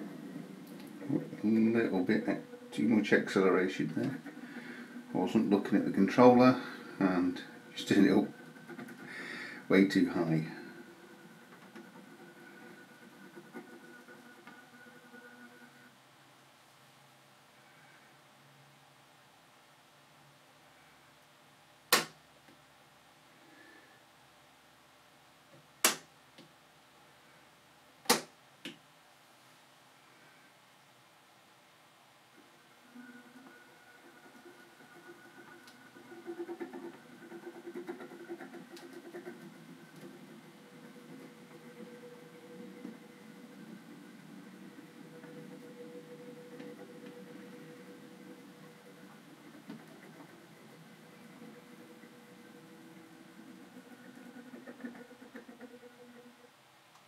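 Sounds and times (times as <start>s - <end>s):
model train diesel engine sound: 0.0s - 13.4s
model train motor and wheels: 0.0s - 15.9s, 32.4s - 57.0s
sharp clicks: 21.9s - 22.2s, 25.8s - 26.1s.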